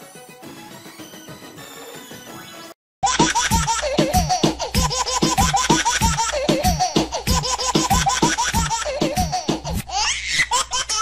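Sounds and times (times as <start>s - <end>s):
fast electronic beat: 3.0s - 9.8s.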